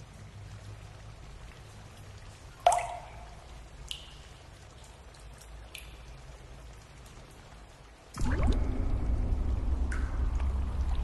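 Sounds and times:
low steady hum: 0.0s - 11.0s
water dripping into water: 0.0s - 11.0s.

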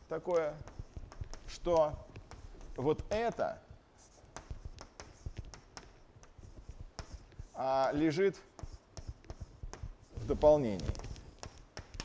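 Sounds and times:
chalk tapping on blackboard: 0.0s - 12.0s
man talking: 0.1s - 0.7s, 1.5s - 2.1s, 2.8s - 3.6s, 7.6s - 8.5s, 10.2s - 11.0s.

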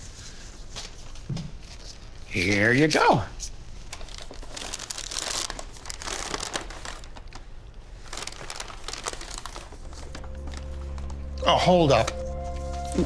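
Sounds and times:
paper bag and foil rustling: 3.7s - 13.0s
low music drone: 9.9s - 13.0s.

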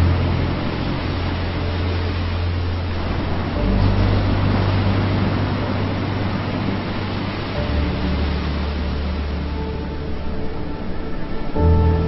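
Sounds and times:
low musical drone: 0.0s - 12.0s
ocean surf washing over beach: 0.0s - 12.0s.

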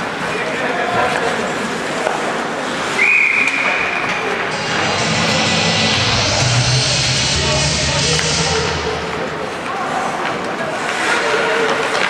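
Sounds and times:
referee's whistle: 3.0s - 4.0s
music: 4.5s - 9.3s.

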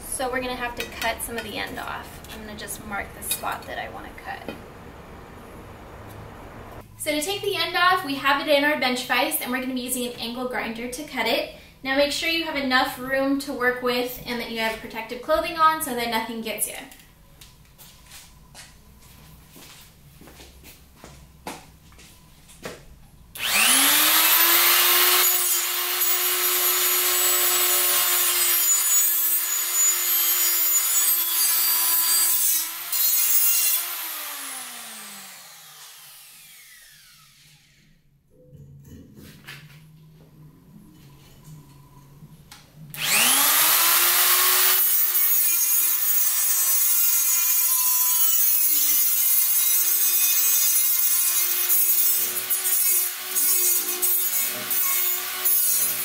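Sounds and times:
angle grinder cutting steel: 23.4s - 37.9s, 43.0s - 56.0s.

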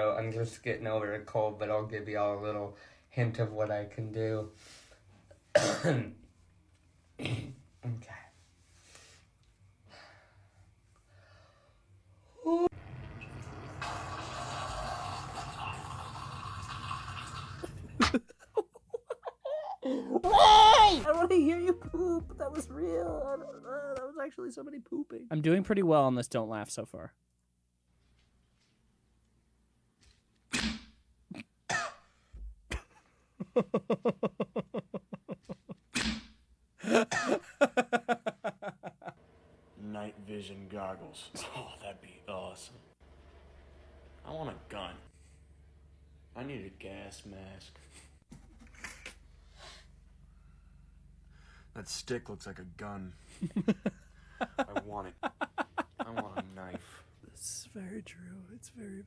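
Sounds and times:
man defecating: 12.7s - 18.2s
man laughing: 17.6s - 20.5s, 32.7s - 35.9s, 36.8s - 39.2s, 53.2s - 57.0s.

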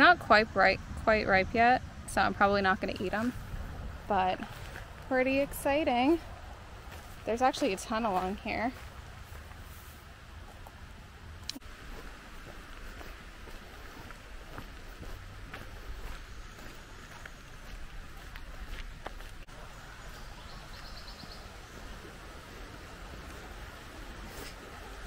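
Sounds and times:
low rumble on microphone: 0.0s - 7.3s
footsteps on dirt trail: 3.0s - 10.8s, 11.5s - 21.4s.

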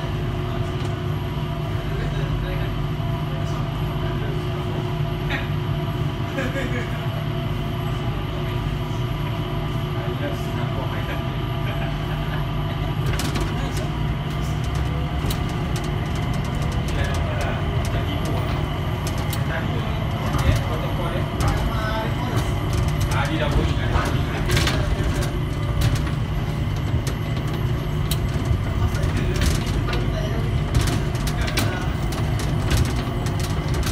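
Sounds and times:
train car rumble: 0.0s - 33.9s
light clicks and rattles: 13.0s - 33.9s.

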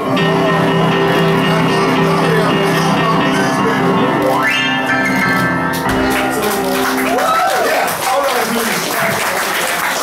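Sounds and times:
piano chords: 0.0s - 10.0s
man singing blues: 1.1s - 4.4s.

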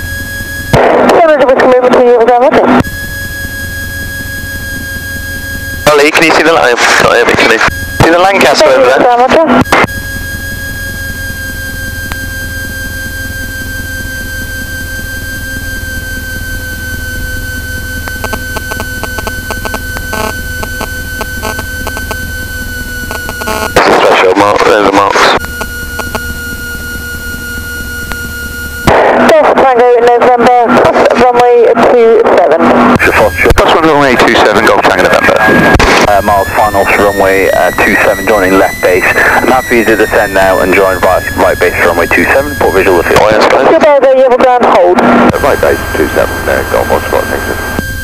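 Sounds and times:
aircraft engine hum and whine: 0.0s - 48.0s
radio voice transmissions: 5.8s - 9.9s, 23.1s - 26.2s, 28.9s - 47.9s.

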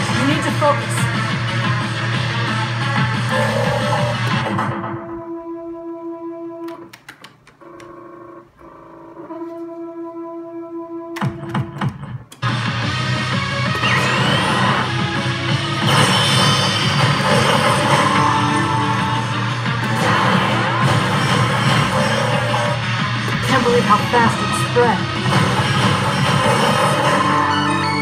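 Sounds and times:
guitar-backed machine music: 0.0s - 5.2s, 11.1s - 28.0s.

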